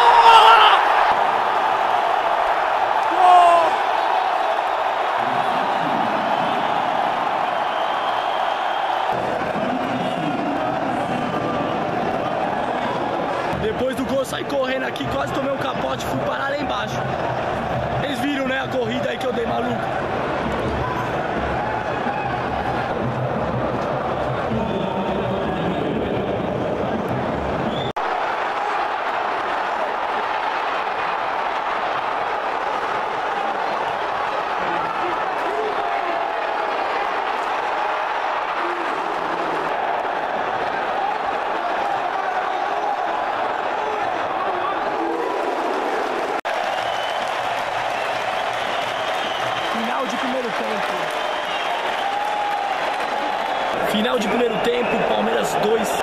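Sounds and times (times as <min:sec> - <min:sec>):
crowd clapping: 0:00.0 - 0:25.0, 0:26.3 - 0:56.0.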